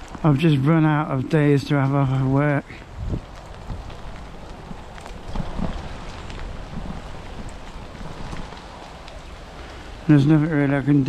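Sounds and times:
bicycle tyres rolling on wet path: 0.0s - 11.0s
wind rumbling on microphone: 0.0s - 11.0s.

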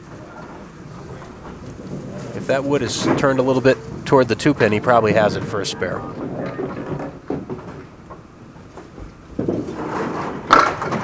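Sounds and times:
ball rolling rumble: 0.0s - 11.0s
ball hitting pins: 9.0s - 11.0s.

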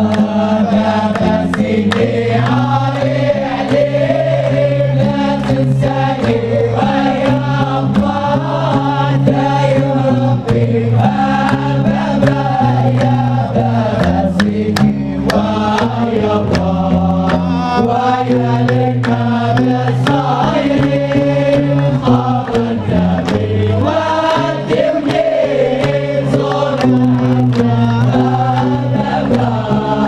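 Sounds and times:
hand claps: 0.0s - 30.0s
men singing a devotional chant: 0.0s - 30.0s.

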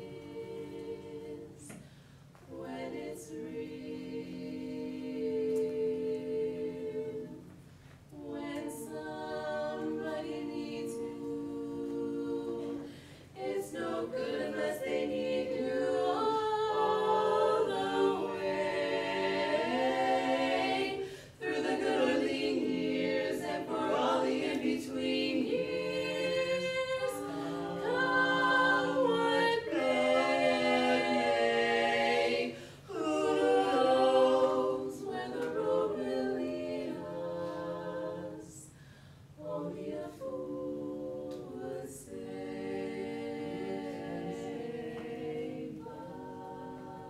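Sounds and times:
women singing in harmony: 0.0s - 47.0s
women's a cappella chord: 0.0s - 47.0s.

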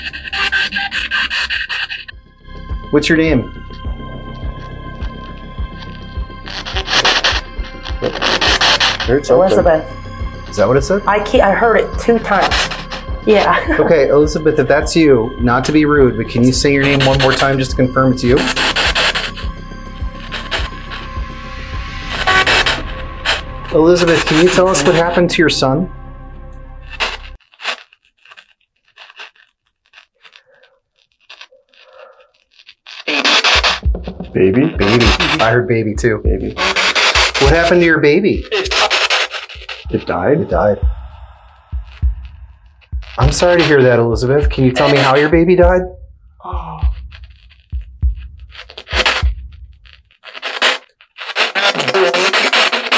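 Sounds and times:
bursts of loud static hiss: 0.0s - 2.1s, 4.5s - 25.2s, 26.8s - 45.6s, 46.8s - 52.9s.

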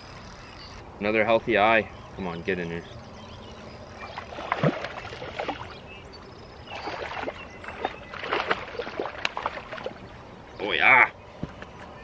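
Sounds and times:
fish splashing in water: 3.9s - 5.8s, 6.6s - 10.0s.

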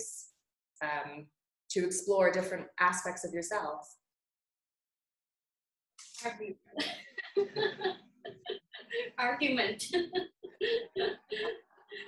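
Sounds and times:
person speaking: 6.0s - 12.0s.

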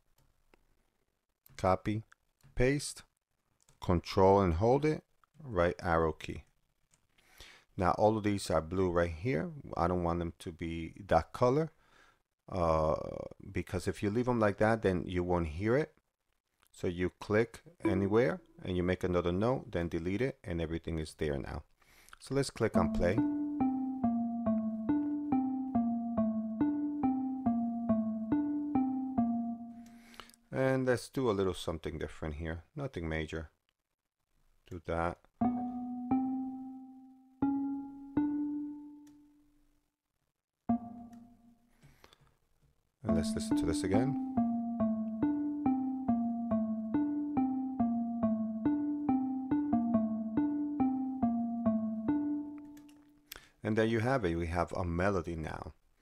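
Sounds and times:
synthesized xylophone melody: 17.8s - 18.4s, 22.8s - 30.0s, 35.4s - 39.0s, 40.7s - 41.5s, 43.1s - 52.9s.

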